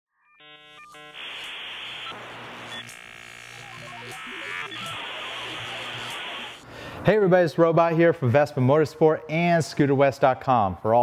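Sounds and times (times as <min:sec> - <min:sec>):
computer-like beeps and tones: 0:00.3 - 0:06.6
hissing static: 0:00.4 - 0:06.6.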